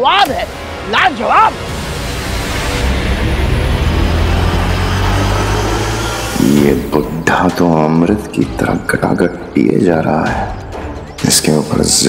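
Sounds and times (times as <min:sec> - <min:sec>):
low rumbling drone with hiss: 0:01.5 - 0:08.0.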